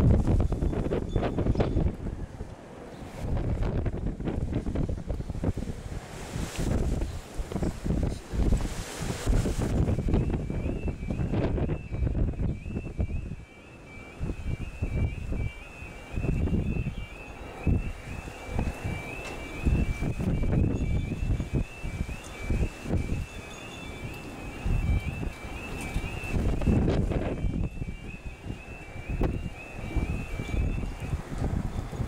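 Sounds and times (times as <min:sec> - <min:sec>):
wind buffeting microphone: 0:00.0 - 0:32.0
level crossing alarm two-tone wail: 0:09.6 - 0:32.0.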